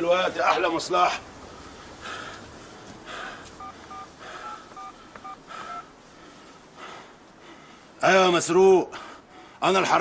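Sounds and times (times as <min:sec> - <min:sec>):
soft noise bursts: 0:00.0 - 0:10.0
phone keypad beeps: 0:03.6 - 0:05.8.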